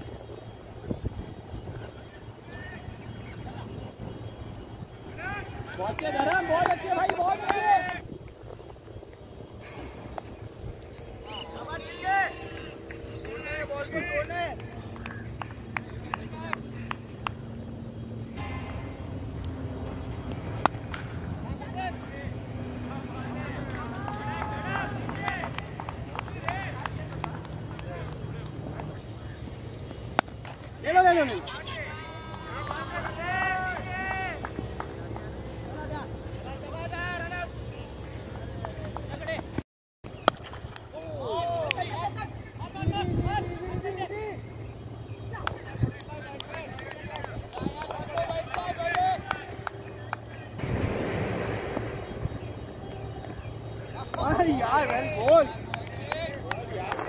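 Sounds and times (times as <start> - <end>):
players calling and shouting: 0.0 - 57.0
steady low hum: 0.0 - 57.0.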